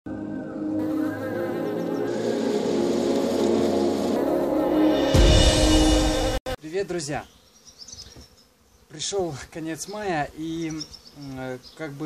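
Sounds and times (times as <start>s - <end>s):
honeybees buzzing: 0.1s - 12.0s.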